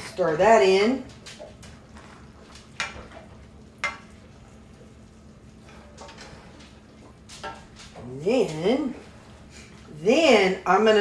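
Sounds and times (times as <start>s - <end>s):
spoon stirring chicken in skillet: 1.2s - 7.7s.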